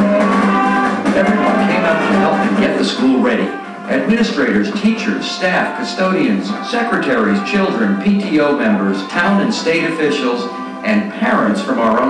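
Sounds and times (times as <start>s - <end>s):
brass and woodwind band chords: 0.0s - 12.0s.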